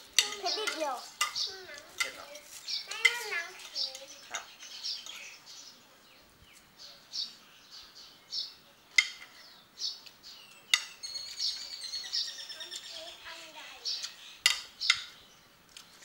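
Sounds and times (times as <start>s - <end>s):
small birds chirping: 0.0s - 16.0s
cutlery clinking on plate: 0.2s - 2.2s.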